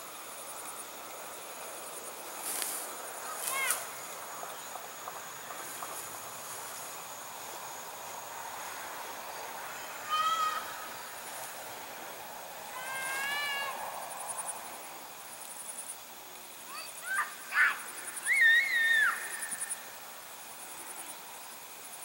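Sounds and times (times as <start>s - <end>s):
insects pulsing: 0.0s - 22.0s.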